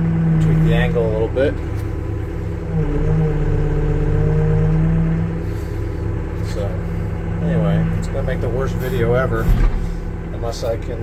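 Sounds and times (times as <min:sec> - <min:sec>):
diesel engine drone from cab: 0:00.0 - 0:11.0.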